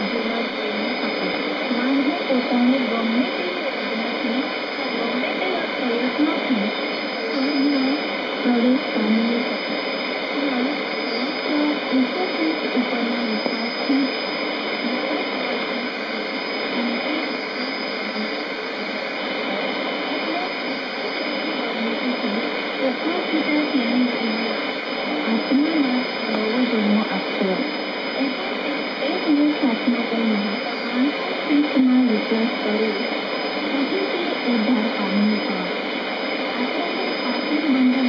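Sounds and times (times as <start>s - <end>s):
radio hiss and static: 0.0s - 38.0s
radio voice: 0.0s - 38.0s.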